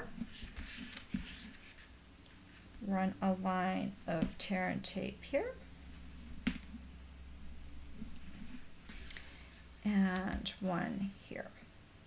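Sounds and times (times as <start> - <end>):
faint handling sounds: 0.0 - 2.9, 7.9 - 10.5
low steady hum: 0.0 - 12.0.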